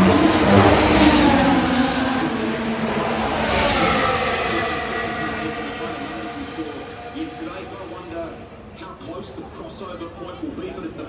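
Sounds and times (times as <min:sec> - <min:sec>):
race car engine passing by: 0:00.0 - 0:09.1.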